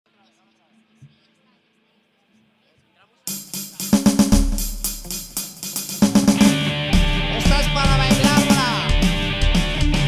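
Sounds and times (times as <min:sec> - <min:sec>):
quick drum kit hits: 0:03.3 - 0:10.0
rock band playing live: 0:03.3 - 0:10.0.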